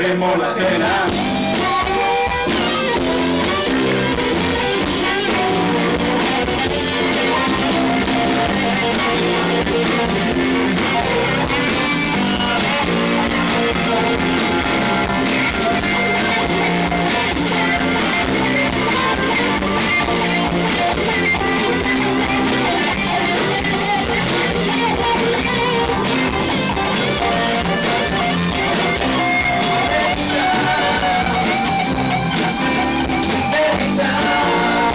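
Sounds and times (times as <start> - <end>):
bass: 0.0 - 34.9
guitar: 0.0 - 34.9
live band playing: 0.0 - 34.9.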